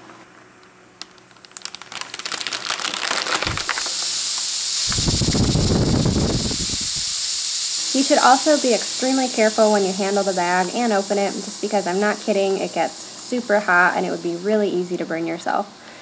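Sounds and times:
crackling and fizzing: 0.6s - 14.6s
loud hiss of steam venting: 3.4s - 16.0s.

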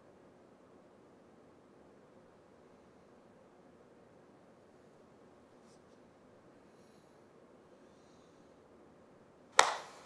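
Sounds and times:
sharp hand smack: 9.6s - 10.0s.

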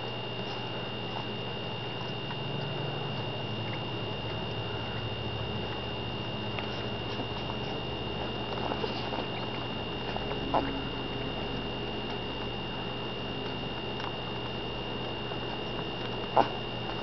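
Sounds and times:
puppies suckling: 0.0s - 17.0s
faint clicks and smacks: 5.6s - 17.0s.

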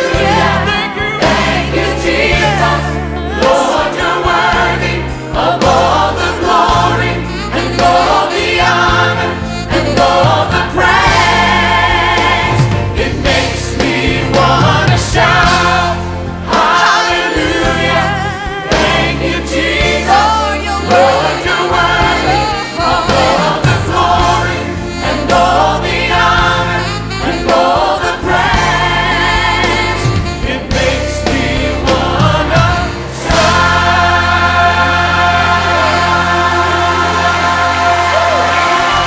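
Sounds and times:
gospel choir singing: 0.0s - 39.0s
instrumental accompaniment: 0.0s - 39.0s
steady bass: 0.0s - 39.0s.

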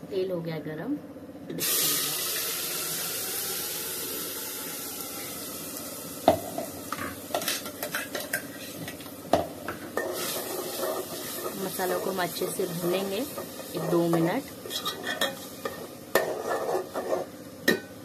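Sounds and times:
paste sizzling in hot oil: 1.6s - 17.5s
metal spoon scraping a pot: 10.0s - 12.2s, 13.3s - 17.3s.

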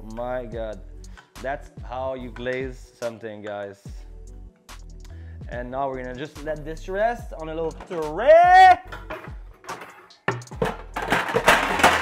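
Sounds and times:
background music: 0.0s - 12.0s
metal trays clattering and scraping: 8.9s - 12.0s.

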